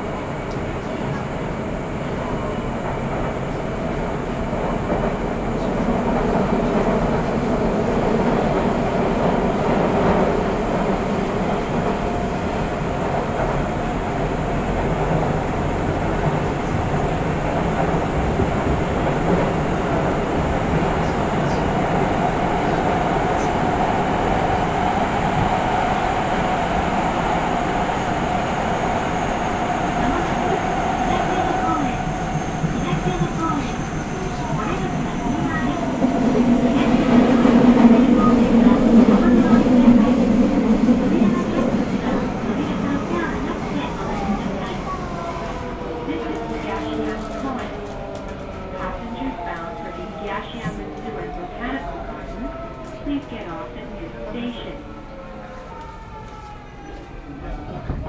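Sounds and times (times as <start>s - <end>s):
train wheels rumbling on rail: 0.0s - 58.0s.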